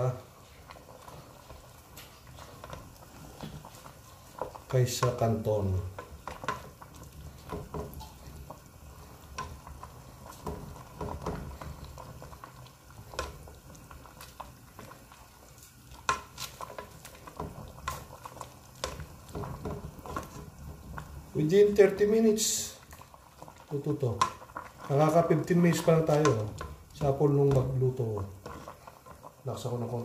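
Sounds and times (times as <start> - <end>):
wooden spatula scraping pot: 0.0 - 29.7
cooking liquid bubbling: 0.0 - 30.0.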